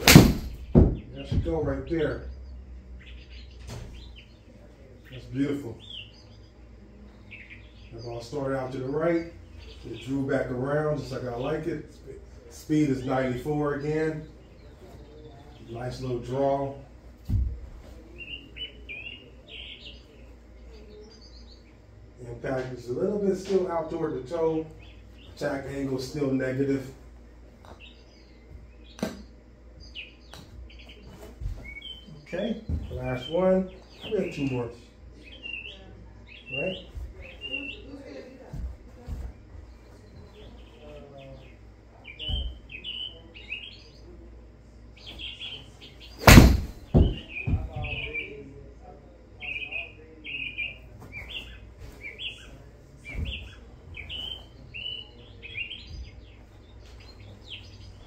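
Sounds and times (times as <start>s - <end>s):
golf ball smacking screen: 0.0s - 1.0s, 46.2s - 47.2s
golf ball thud on mat: 0.0s - 1.5s, 46.2s - 47.7s
birds chirping: 0.0s - 58.0s.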